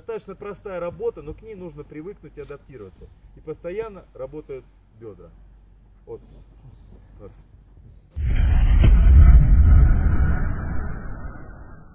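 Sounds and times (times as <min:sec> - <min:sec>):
deep boom sting: 0:08.2 - 0:11.9
sharp hit: 0:08.2 - 0:11.9.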